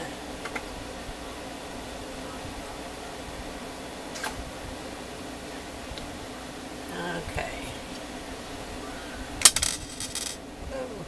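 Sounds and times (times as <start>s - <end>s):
small hard pieces clinking: 9.4s - 10.4s.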